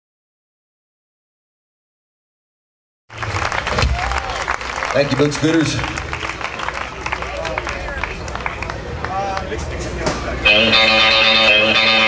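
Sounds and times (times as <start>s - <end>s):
audience applauding: 3.1s - 9.8s.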